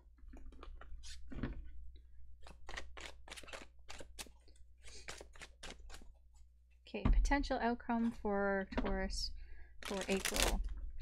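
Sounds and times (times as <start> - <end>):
cards being shuffled: 2.4 - 6.1, 9.8 - 10.6.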